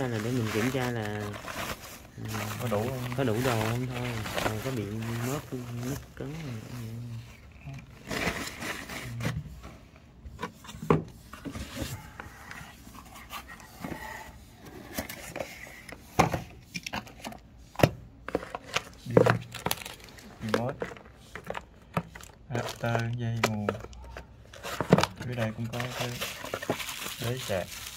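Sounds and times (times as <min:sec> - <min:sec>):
plastic wrap and cardboard rustling: 0:00.0 - 0:17.5, 0:18.2 - 0:27.9.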